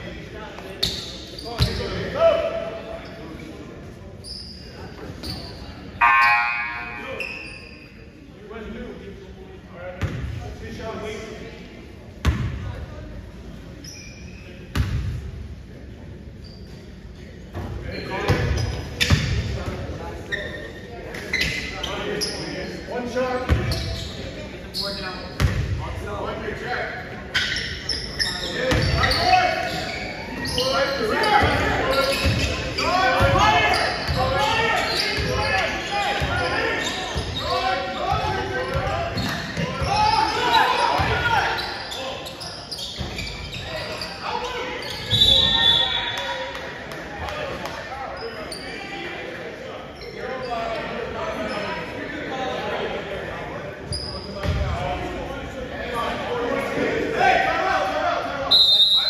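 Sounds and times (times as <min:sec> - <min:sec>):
shrill high tone: 0:06.0 - 0:07.2
people calling out: 0:06.0 - 0:07.5, 0:39.6 - 0:42.0.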